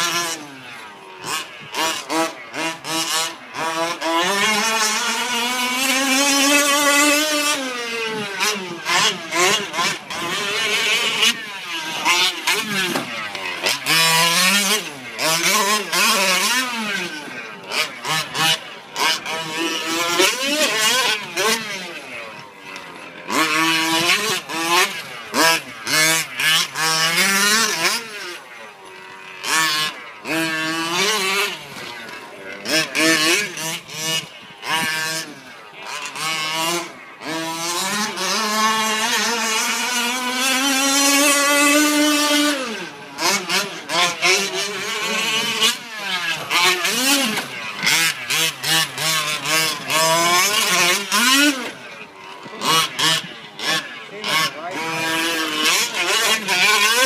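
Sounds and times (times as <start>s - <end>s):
small two-stroke engine revving: 0.0s - 57.0s.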